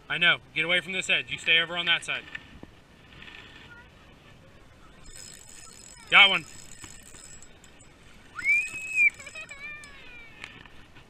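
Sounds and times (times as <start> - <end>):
child's high-pitched squeal: 8.3 - 10.6.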